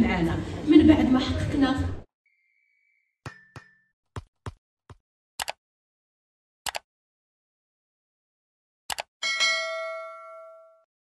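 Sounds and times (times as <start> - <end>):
notification bell ding: 9.2 - 10.9.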